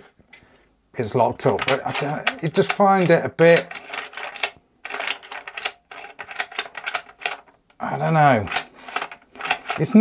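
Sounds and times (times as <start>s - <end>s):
rifle bolt rattling and clicking: 1.5s - 10.0s.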